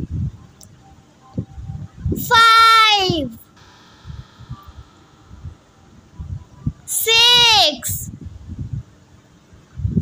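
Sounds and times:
child calling out sing-song: 2.2s - 3.4s, 6.9s - 8.1s.

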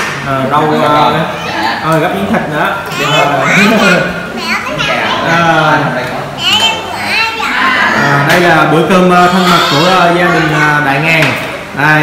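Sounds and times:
children's high voices: 2.9s - 5.6s, 6.3s - 8.3s, 9.2s - 10.9s.

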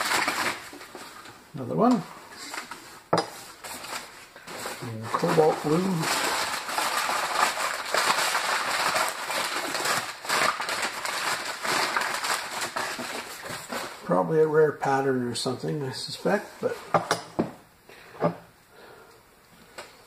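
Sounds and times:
crumpled newspaper rustling: 0.0s - 15.0s.

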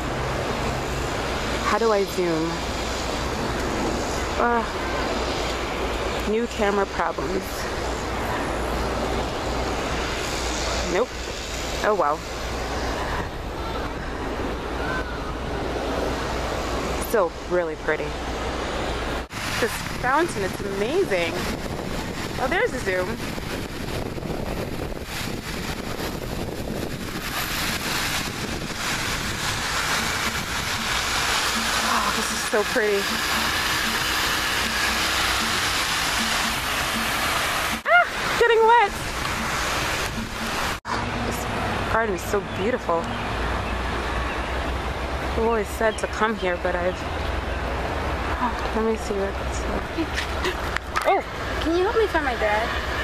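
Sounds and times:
fountain water splashing: 0.0s - 53.0s
steady outdoor rushing noise: 0.0s - 53.0s.

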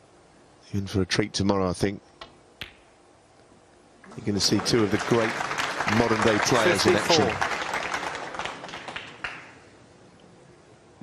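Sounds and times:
audience applause: 4.1s - 9.6s.

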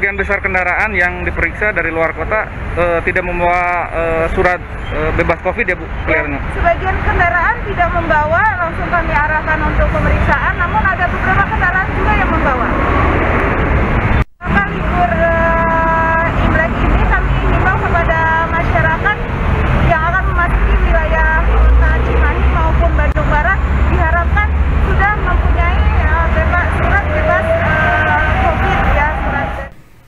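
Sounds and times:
low rumble of road traffic: 0.0s - 30.0s
woman speaking: 6.1s - 12.8s, 14.4s - 19.3s, 19.9s - 29.8s.

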